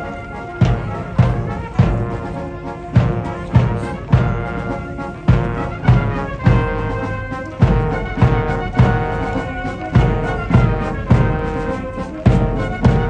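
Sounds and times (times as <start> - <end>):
steady drum beat: 0.0 - 13.0
sustained brass chords: 0.0 - 13.0.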